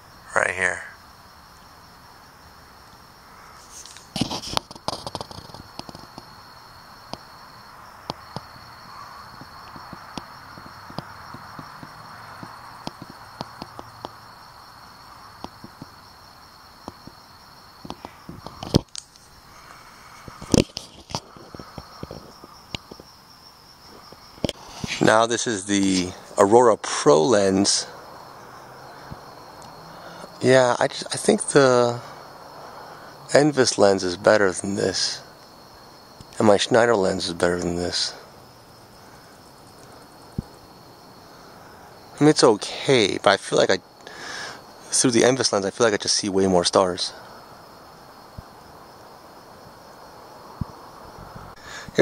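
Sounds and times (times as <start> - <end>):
crickets chirring: 0.0 - 52.0
handling knocks and clicks: 4.2 - 6.3.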